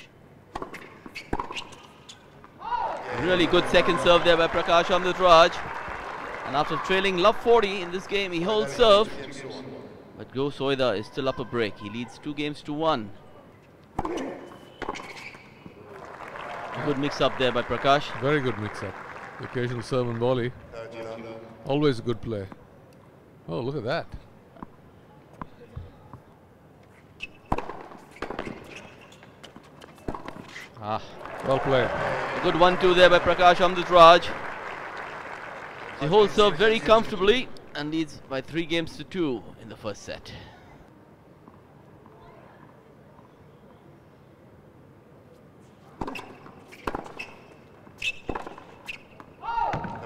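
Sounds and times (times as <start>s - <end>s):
crowd clapping: 3.0s - 8.5s, 15.8s - 20.8s, 31.1s - 37.3s
tennis balls struck by rackets: 27.4s - 28.7s, 48.0s - 50.0s.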